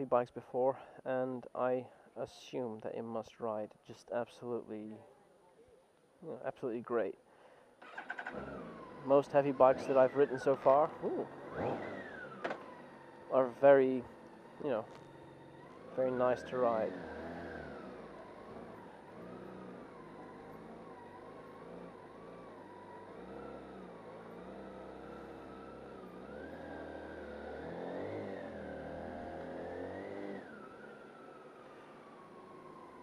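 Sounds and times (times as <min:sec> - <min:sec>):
motorcycle engine at low revs: 0:07.8 - 0:33.0.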